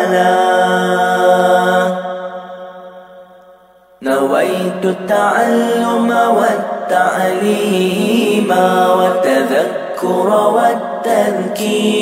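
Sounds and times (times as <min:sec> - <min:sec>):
man chanting recitation: 0:04.0 - 0:12.0.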